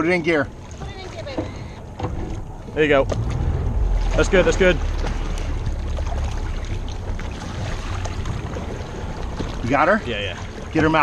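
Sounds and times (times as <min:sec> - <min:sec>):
boat motor low rumble: 0:00.0 - 0:11.0
water rushing along hull: 0:00.0 - 0:11.0.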